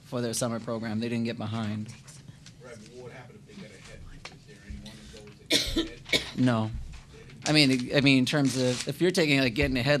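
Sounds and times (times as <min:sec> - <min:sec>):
low murmur of voices: 0:02.6 - 0:08.0
person coughing: 0:05.5 - 0:06.5.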